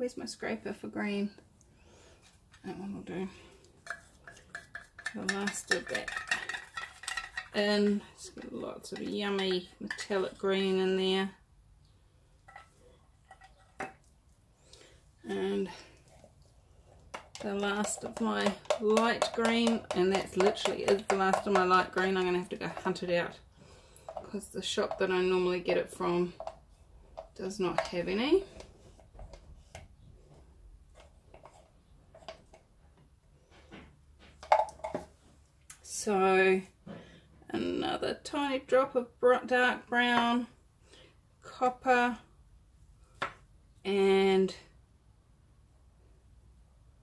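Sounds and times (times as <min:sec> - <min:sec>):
scraper tapping plastic bottle: 0:17.1 - 0:23.0.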